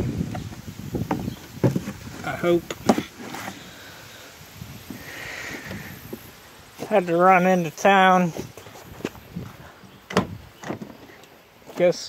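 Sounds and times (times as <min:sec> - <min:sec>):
outdoor background noise: 0:00.0 - 0:12.0
cardboard rustling: 0:00.3 - 0:03.8.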